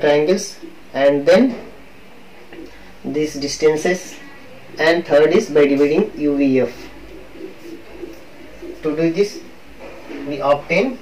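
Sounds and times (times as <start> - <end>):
man speaking: 0.0 - 1.6, 3.0 - 11.0
pigeon cooing: 2.5 - 11.0.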